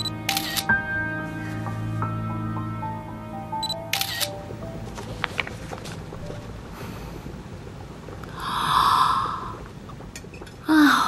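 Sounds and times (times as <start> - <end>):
soft background music: 0.0 - 11.0
phone camera shutter click: 0.3 - 0.7, 3.9 - 4.3.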